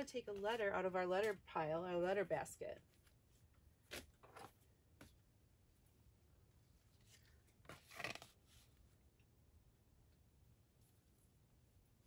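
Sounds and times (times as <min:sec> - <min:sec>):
paper card rustling and scraping: 0:02.9 - 0:04.7, 0:06.6 - 0:08.9.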